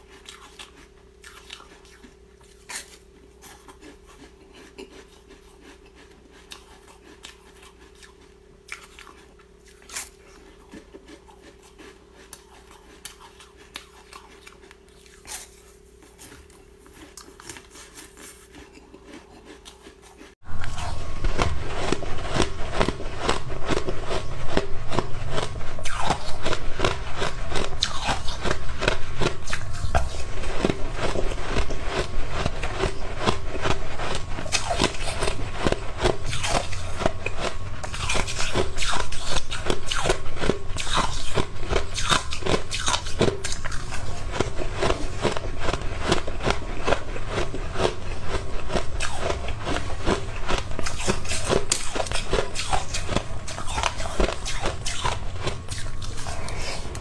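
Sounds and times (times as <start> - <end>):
ice being crunched and chewed: 0.0 - 57.0.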